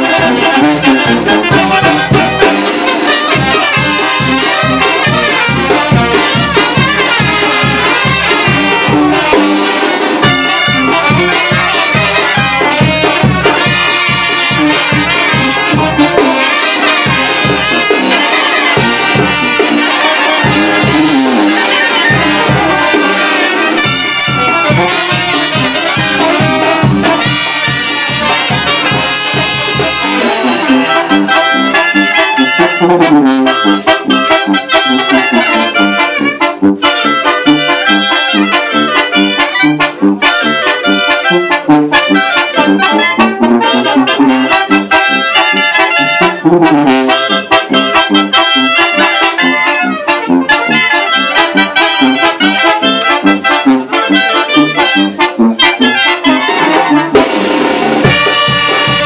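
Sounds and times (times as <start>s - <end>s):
brass band playing: 0.0s - 59.0s
trumpets playing melody: 0.0s - 59.0s.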